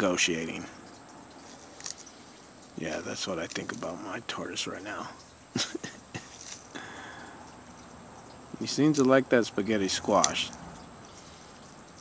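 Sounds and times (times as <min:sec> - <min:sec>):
tortoise crunching squash: 0:00.0 - 0:12.0
low chuckle: 0:05.5 - 0:06.6.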